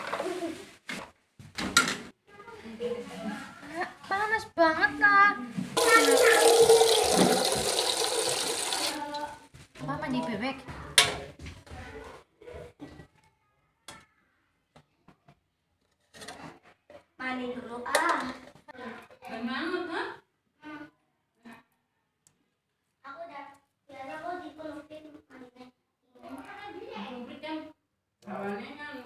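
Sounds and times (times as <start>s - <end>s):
kitchen clatter of ladle and tub: 0.0s - 2.1s, 5.6s - 9.3s.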